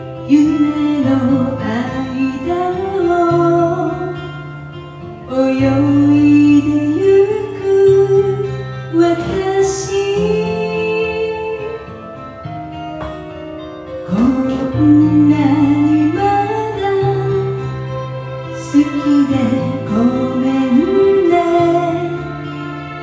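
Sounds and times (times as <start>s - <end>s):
woman singing into microphone: 0.0s - 12.3s, 14.0s - 23.0s
karaoke backing track: 0.0s - 23.0s.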